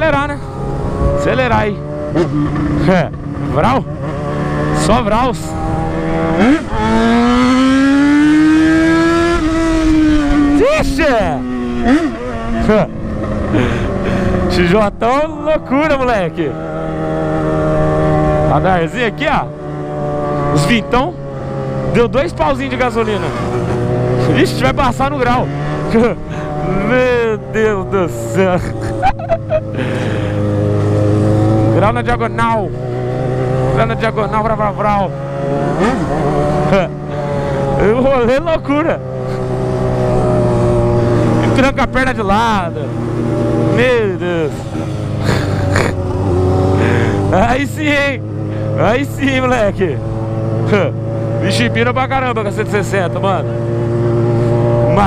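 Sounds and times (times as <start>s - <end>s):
motorcycle engine running: 0.0s - 55.0s
wind noise on microphone: 0.7s - 1.3s
person speaking: 24.2s - 30.5s, 46.7s - 50.0s.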